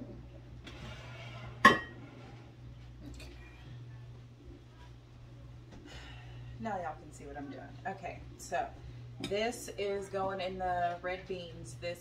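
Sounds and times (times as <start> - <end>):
ceramic dish clinking: 1.6 - 2.0.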